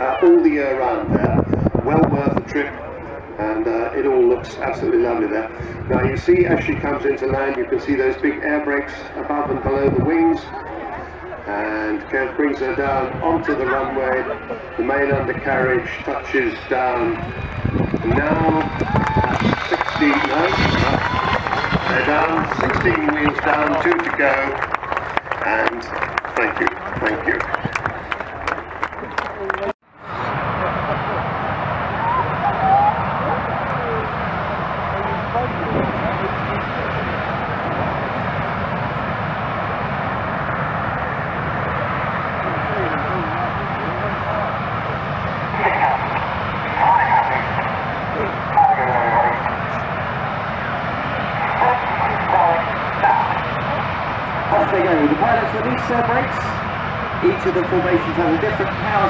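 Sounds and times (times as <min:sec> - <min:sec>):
jet engines running: 0:00.0 - 0:59.0
spectators talking: 0:00.0 - 0:59.0.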